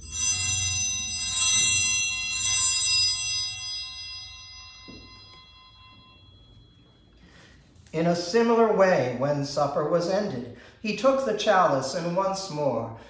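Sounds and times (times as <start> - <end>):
altar bells ringing: 0.0 - 8.8.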